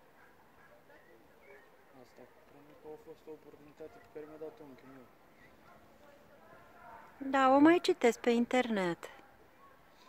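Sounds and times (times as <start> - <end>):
faint outdoor ambience: 0.0 - 10.0.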